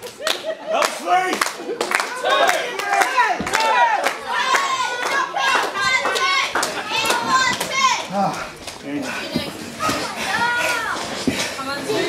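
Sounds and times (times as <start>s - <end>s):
children shouting: 2.1s - 8.4s.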